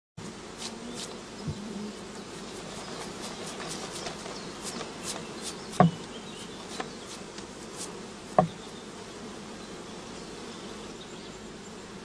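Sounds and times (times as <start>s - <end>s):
honey bees buzzing: 0.2s - 12.0s
low thump: 8.4s - 8.6s.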